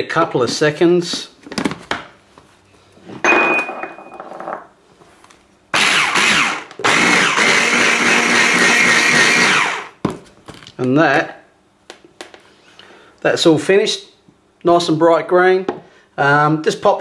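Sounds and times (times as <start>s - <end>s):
electric blender whirring: 5.8s - 10.0s.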